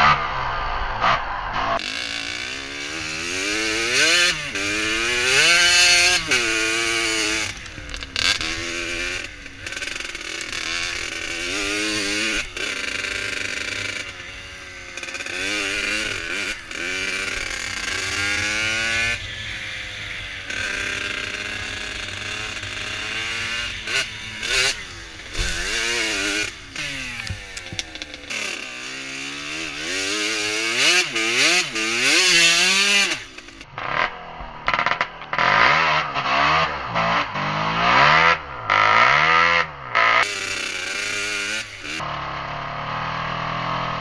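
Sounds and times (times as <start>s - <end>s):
dirt bike engine revving: 0.0s - 44.0s.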